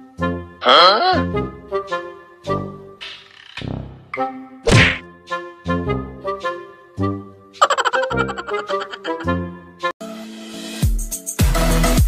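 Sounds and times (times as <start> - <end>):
bouncy comedy music: 0.2 - 9.9
loud whack: 4.7 - 5.0.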